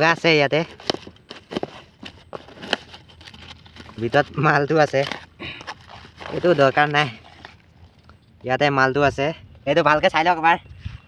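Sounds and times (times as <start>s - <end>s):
blade slitting tape and cardboard: 0.6s - 7.6s.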